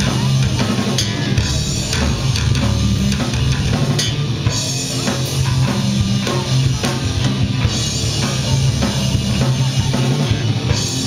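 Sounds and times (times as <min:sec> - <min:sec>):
drum kit: 0:00.0 - 0:11.0
electric guitar: 0:00.0 - 0:11.0
low bass line: 0:00.0 - 0:11.0.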